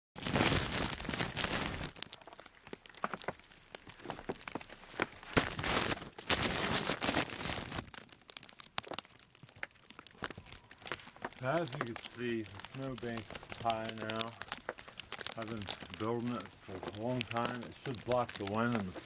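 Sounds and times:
plastic sheeting crinkling: 0.2s - 19.0s.

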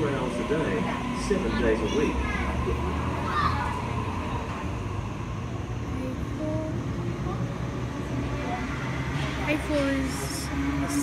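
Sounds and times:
train rumbling past: 0.0s - 11.0s.

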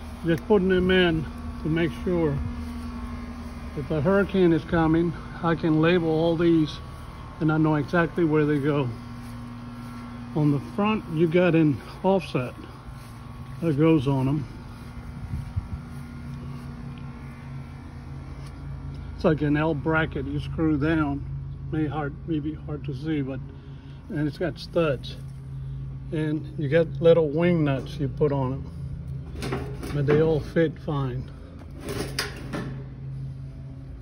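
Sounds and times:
low mechanical hum: 0.0s - 34.0s.

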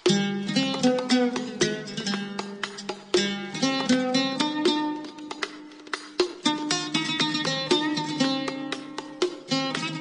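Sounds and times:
plucked string instrument: 0.0s - 10.0s.

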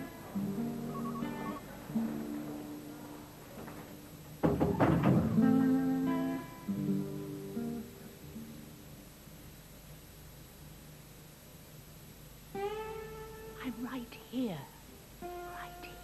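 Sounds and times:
guitar strumming slow chords: 0.0s - 4.1s, 5.3s - 8.8s, 12.5s - 13.6s.

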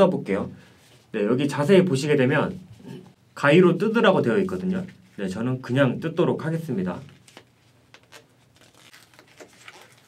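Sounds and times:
paper packaging tearing: 8.0s - 10.0s.

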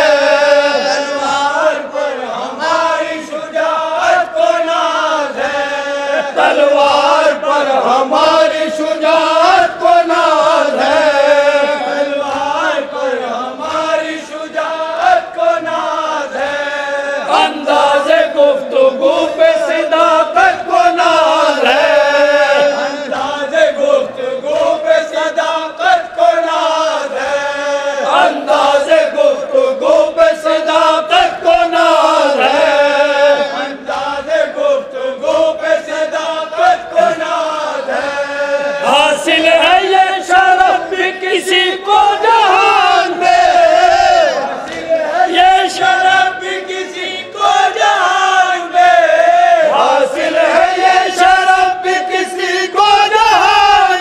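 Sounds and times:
men chanting in unison: 0.0s - 54.0s.

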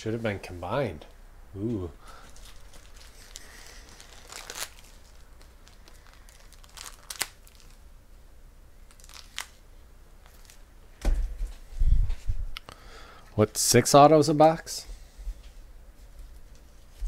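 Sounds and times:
foil wrappers crinkling and tearing: 2.1s - 7.8s, 8.8s - 9.6s, 10.2s - 10.6s.

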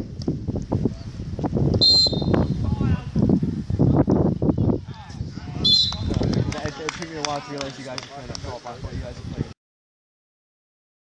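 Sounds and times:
referee's whistle blast: 1.8s - 2.6s, 5.6s - 6.1s.

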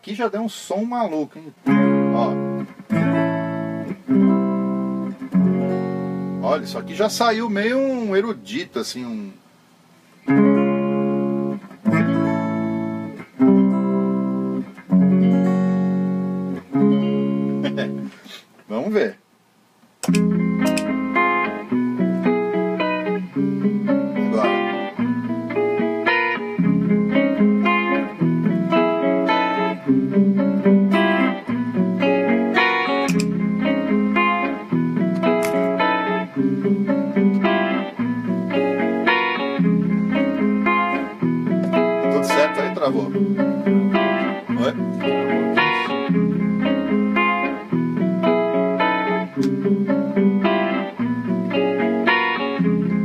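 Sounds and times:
electric guitar chords: 1.6s - 9.4s, 10.2s - 18.2s, 20.0s - 53.0s.

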